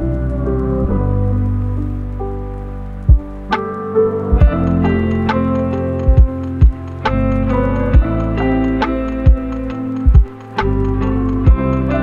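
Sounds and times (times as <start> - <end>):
lo-fi hip hop keyboard chords: 0.0 - 12.0.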